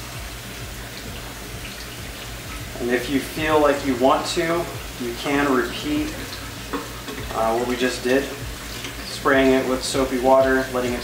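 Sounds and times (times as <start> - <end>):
faucet sprayer running water: 0.0 - 11.0.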